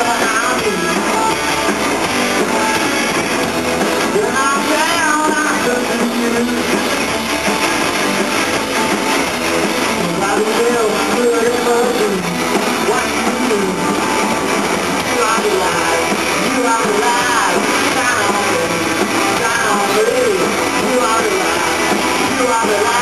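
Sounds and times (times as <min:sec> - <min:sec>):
bass guitar: 0:00.0 - 0:23.0
drums: 0:00.0 - 0:23.0
electric guitars: 0:00.0 - 0:23.0.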